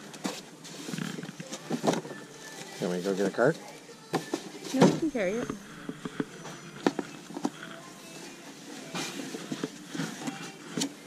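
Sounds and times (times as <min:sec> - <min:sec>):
man talking: 0:02.8 - 0:03.6.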